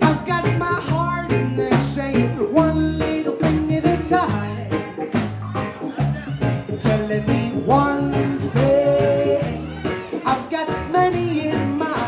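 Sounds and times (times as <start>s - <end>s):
electric guitar: 0.0s - 12.0s
live reggae band playing: 0.0s - 12.0s.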